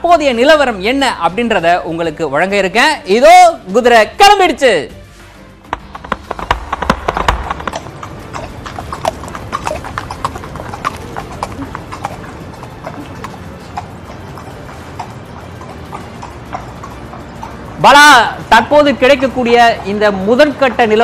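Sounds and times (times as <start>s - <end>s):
horse hooves clip-clopping: 5.6s - 19.7s.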